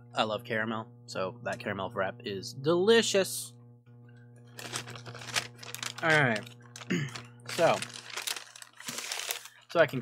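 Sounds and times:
steady low hum: 0:00.0 - 0:10.0
paper packaging rustling: 0:04.5 - 0:10.0.

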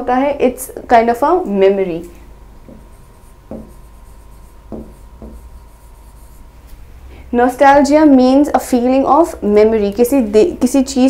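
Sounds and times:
faint steady whine: 0:00.0 - 0:11.0
pen scratching on board: 0:02.6 - 0:06.5.

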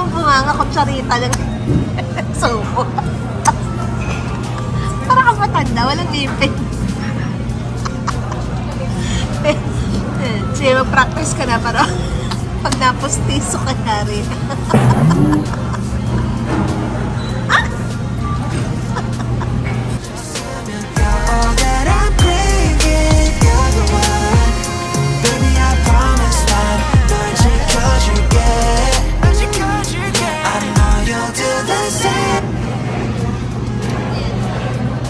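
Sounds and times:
restaurant room noise: 0:00.0 - 0:35.0
low hum: 0:14.7 - 0:16.2
background music: 0:14.7 - 0:16.3, 0:20.0 - 0:32.4.

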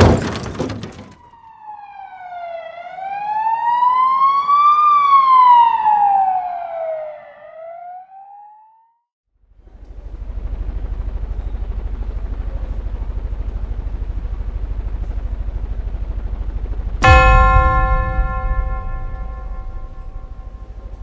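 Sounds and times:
low pulsing hum: 0:09.9 - 0:21.0
metallic bell-like impact: 0:17.0 - 0:21.0.

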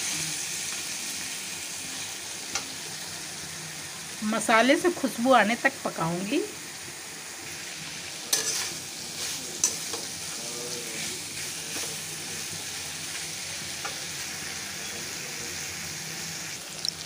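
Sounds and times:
masala sizzling in oil: 0:00.0 - 0:17.0
metal spatula scraping pan: 0:08.3 - 0:10.1.

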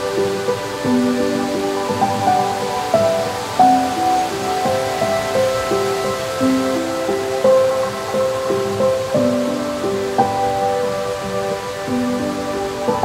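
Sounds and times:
faint steady hiss: 0:00.0 - 0:13.0
soft melody of held notes: 0:00.0 - 0:13.0.

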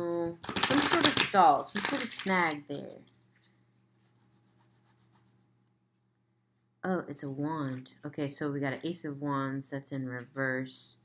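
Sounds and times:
cards being shuffled by hand: 0:00.4 - 0:02.5.

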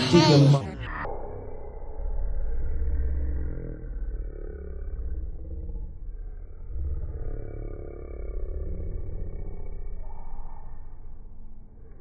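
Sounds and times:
slowed-down child's voice: 0:00.0 - 0:05.2.

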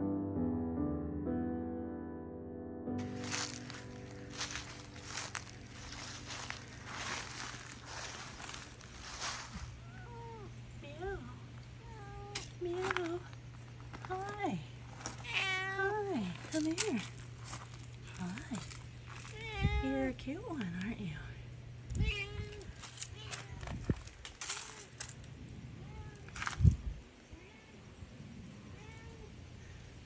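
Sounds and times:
cat meowing faintly: 0:09.8 - 0:10.5, 0:27.3 - 0:27.9.

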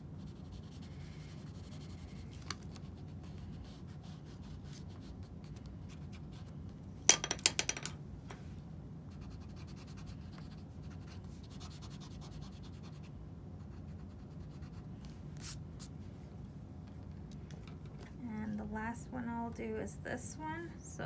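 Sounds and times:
pencil scratching on paper: 0:09.1 - 0:15.6.

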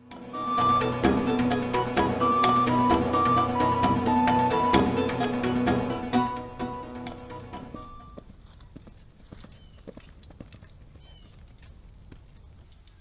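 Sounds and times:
music: 0:00.0 - 0:08.2
horse hooves clip-clopping: 0:07.0 - 0:13.0.

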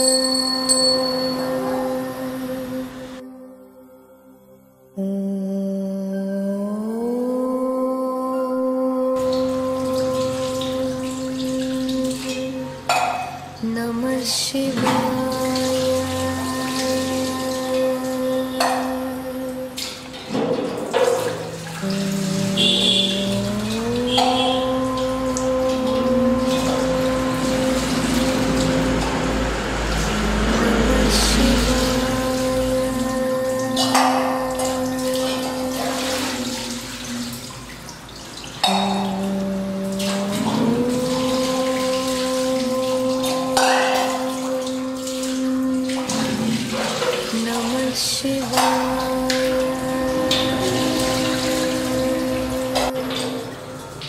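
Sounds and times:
devotional chanting: 0:00.0 - 0:37.6, 0:38.6 - 0:54.0
water splashing onto stone: 0:09.2 - 0:54.0.

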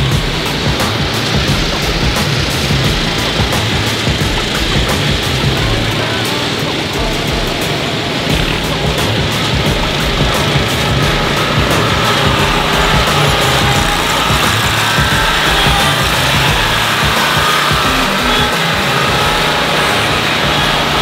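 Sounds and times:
background music: 0:00.0 - 0:21.0
ride-on mower engines running: 0:00.0 - 0:21.0.

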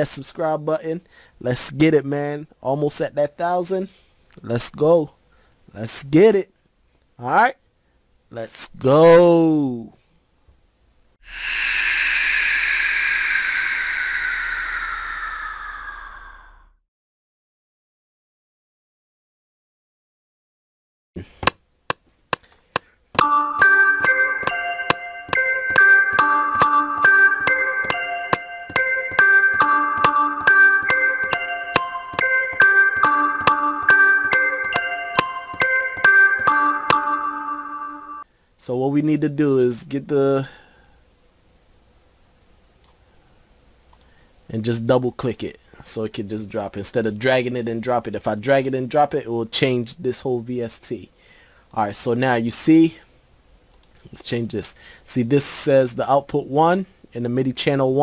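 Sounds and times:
long whoosh: 0:11.2 - 0:16.8
bell-like synth chord: 0:23.2 - 0:38.2
man talking: 0:38.6 - 0:40.5, 0:51.8 - 0:53.0.

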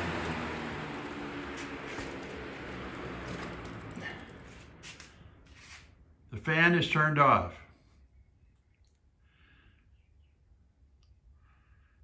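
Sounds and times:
box fan whirring: 0:00.0 - 0:06.2.

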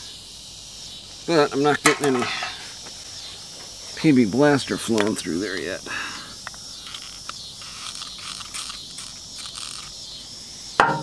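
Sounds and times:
insect chirring: 0:00.0 - 0:11.0
loud knock: 0:10.8 - 0:11.0.

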